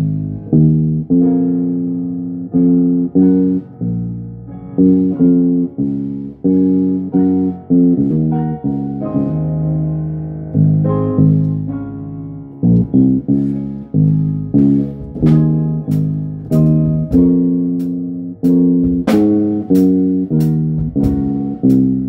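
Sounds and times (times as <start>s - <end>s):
electric bass guitar plucked: 0.0s - 22.0s.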